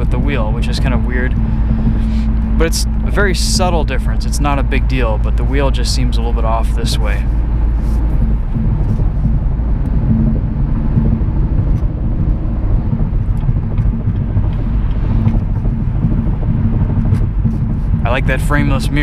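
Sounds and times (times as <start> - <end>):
car engine drone: 0.0 - 19.0
tyre and road noise: 0.0 - 19.0.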